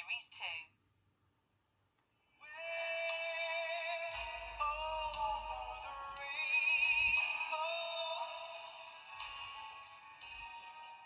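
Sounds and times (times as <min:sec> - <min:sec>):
man singing sustained notes: 0:02.4 - 0:09.8
backing music: 0:02.4 - 0:11.0.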